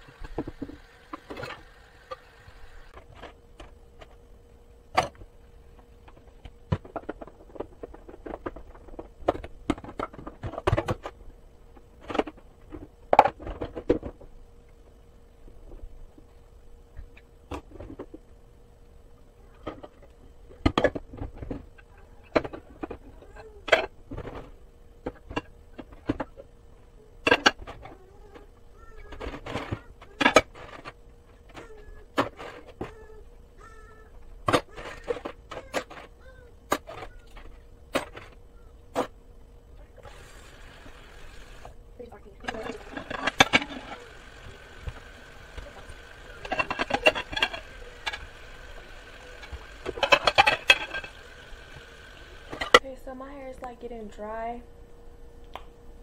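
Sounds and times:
steady faint hum: 0.0 - 56.0.

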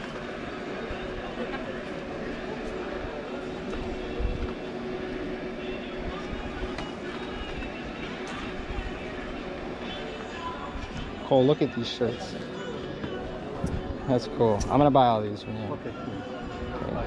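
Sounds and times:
steady background hum: 0.0 - 17.0.

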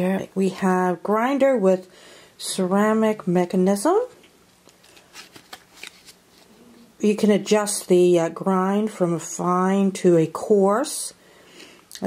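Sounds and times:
soft rustles: 4.6 - 6.9.

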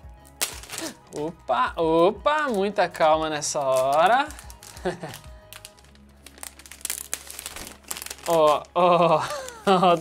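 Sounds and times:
plastic packaging crinkling: 0.2 - 10.0.

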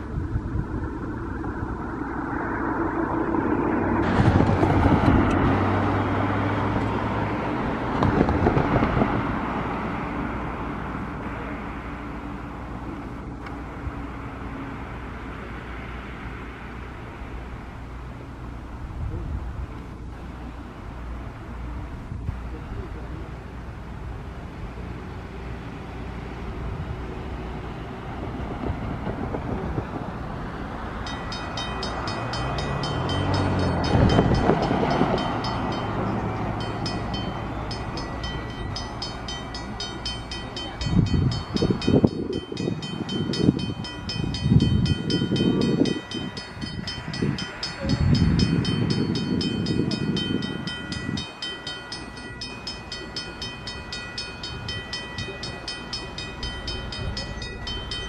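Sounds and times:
loud low rumbling bursts: 0.0 - 11.7
level crossing bells ringing: 30.9 - 58.0.

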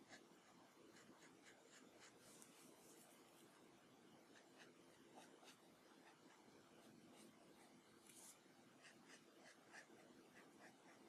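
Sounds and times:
marker scratching on paper: 0.0 - 3.0, 8.0 - 11.0.

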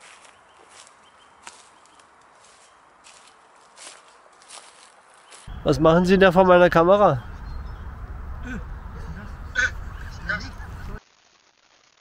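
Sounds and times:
man laughing: 8.4 - 11.0.

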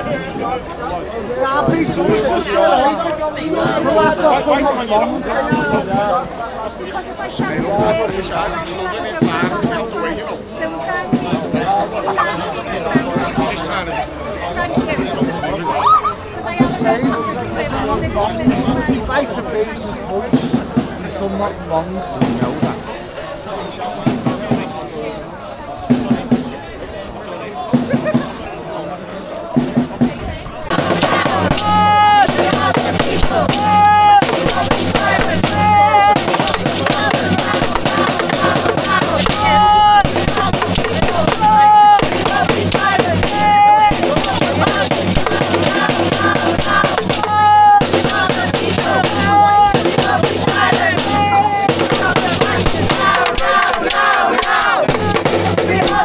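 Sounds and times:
crowd chanting in unison: 0.0 - 19.7, 29.8 - 56.0
drums beaten with sticks: 1.6 - 2.6, 3.5 - 4.2, 5.4 - 6.1, 9.1 - 10.2, 11.0 - 12.2, 12.8 - 13.7, 14.6 - 15.5, 16.6 - 17.3, 20.3 - 21.2, 22.2 - 22.9, 24.0 - 24.8, 25.9 - 26.6, 27.7 - 28.4, 29.6 - 56.0.

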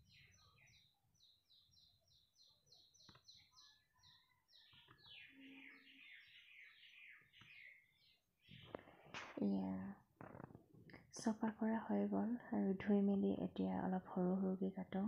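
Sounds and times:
faint bird chirping: 0.0 - 15.0.

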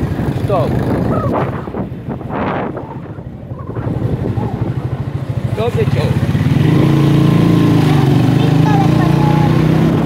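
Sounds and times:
motorcycle engine running: 0.0 - 10.0
wind buffeting microphone: 0.0 - 10.0.

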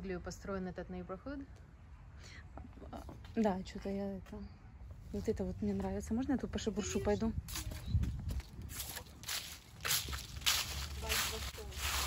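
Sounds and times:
footsteps through dry leaves: 7.4 - 12.0.

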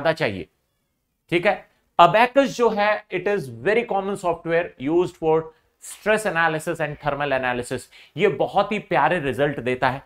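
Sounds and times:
man lecturing: 0.0 - 0.5, 1.3 - 10.0.

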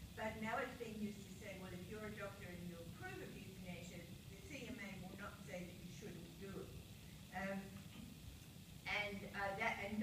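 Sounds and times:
woman speaking into a microphone: 0.2 - 7.8, 8.9 - 10.0.

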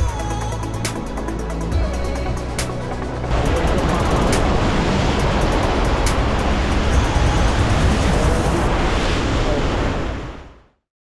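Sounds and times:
background music with beat: 0.0 - 8.6
waves breaking against rocks: 3.3 - 10.4.

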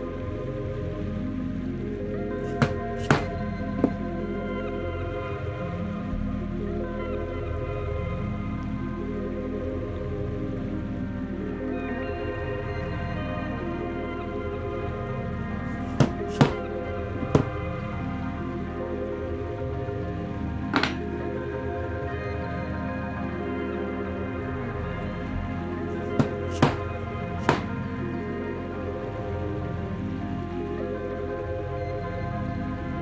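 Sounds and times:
slow music of sustained chords: 0.0 - 33.0
mallet striking pricking iron: 26.0 - 27.8.

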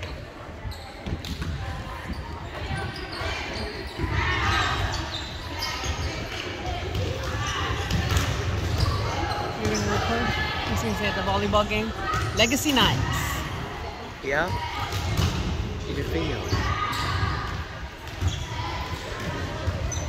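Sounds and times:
players chattering: 0.0 - 20.0
volleyballs hit and bouncing: 1.0 - 5.0, 5.8 - 13.0, 14.4 - 20.0.

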